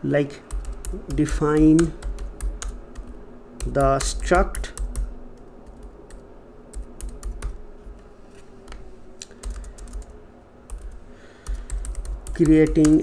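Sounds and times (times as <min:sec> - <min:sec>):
faint steady hum: 0:00.0 - 0:13.0
computer keyboard key clicks: 0:09.2 - 0:10.1, 0:10.7 - 0:13.0.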